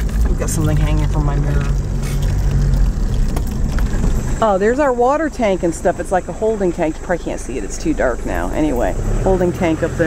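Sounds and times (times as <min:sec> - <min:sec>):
car engine pulling: 0:00.0 - 0:10.0
tyres rumbling over dirt road: 0:00.0 - 0:10.0.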